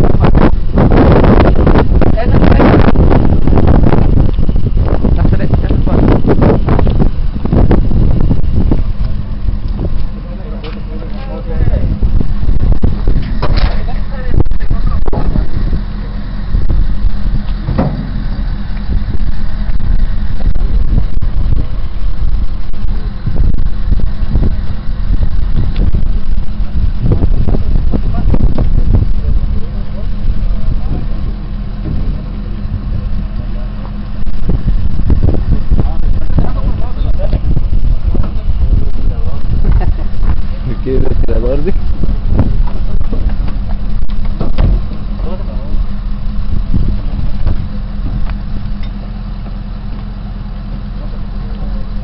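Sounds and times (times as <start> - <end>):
wind buffeting microphone: 0.0 - 52.0
muffled voices: 8.8 - 16.6, 27.9 - 49.0, 50.6 - 52.0.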